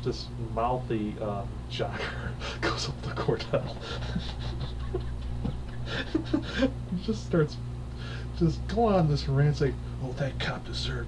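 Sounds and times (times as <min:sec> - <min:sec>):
steady low hum: 0:00.0 - 0:11.0
man's stifled breathy laughter: 0:02.0 - 0:06.9.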